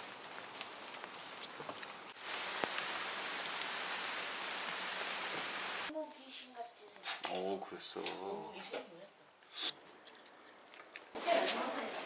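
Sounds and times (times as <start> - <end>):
rain falling on foliage: 0.0 - 5.9.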